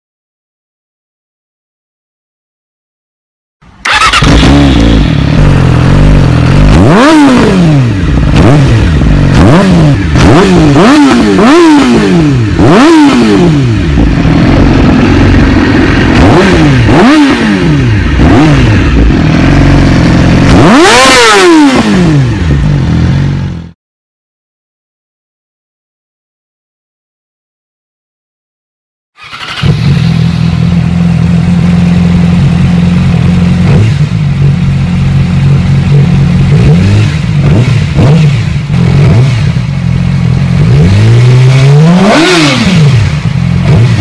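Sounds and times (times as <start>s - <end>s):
motorcycle engine revving: 3.8s - 23.8s, 29.2s - 44.0s.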